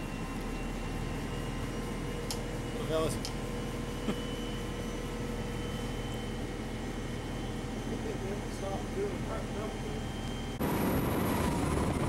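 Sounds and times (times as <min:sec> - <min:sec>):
faint steady whine: 0:00.0 - 0:12.0
armored car engine running: 0:10.0 - 0:12.0.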